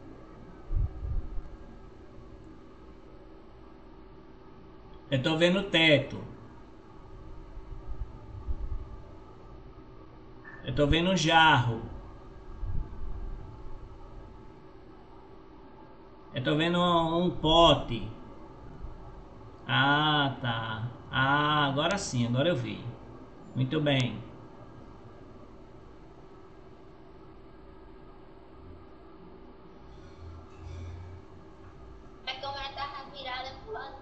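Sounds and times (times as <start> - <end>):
faint steady hiss: 0.0 - 34.0
low hum: 0.0 - 34.0.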